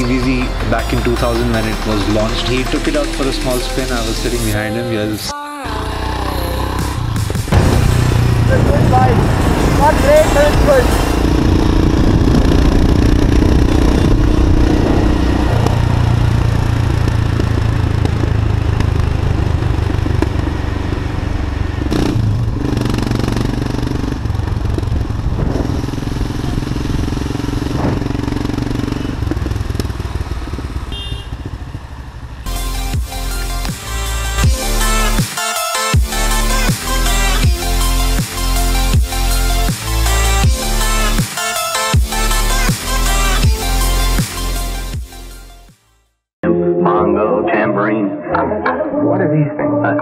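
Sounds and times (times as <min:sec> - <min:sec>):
motorcycle engine running: 0:05.7 - 0:35.2
wind noise on microphone: 0:08.4 - 0:16.6, 0:24.8 - 0:27.1.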